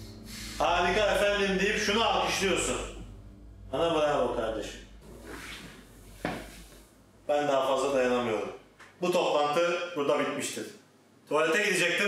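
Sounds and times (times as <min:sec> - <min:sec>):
soft rustling: 0:05.0 - 0:07.0.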